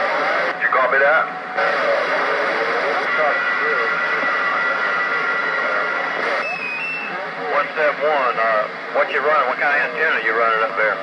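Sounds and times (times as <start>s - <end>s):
radio static hiss: 0.0s - 11.0s
thin steady whistle: 6.2s - 7.2s.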